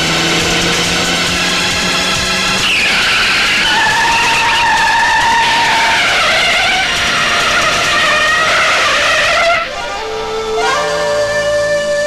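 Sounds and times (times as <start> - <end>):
car engines running: 0.0 - 12.0
car tyres squealing: 0.4 - 11.9.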